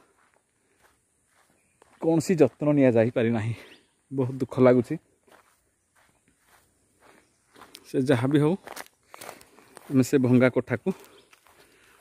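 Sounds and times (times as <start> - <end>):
faint footsteps: 0.0 - 12.0.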